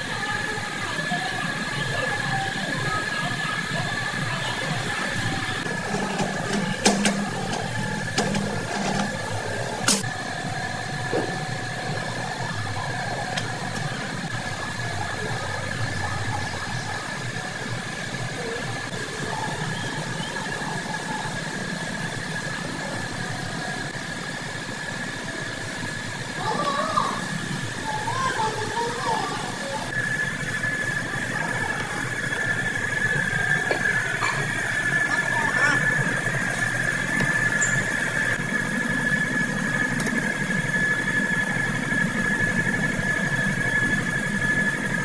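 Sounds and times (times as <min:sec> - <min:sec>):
machine hum with high whine: 0:00.0 - 0:45.0.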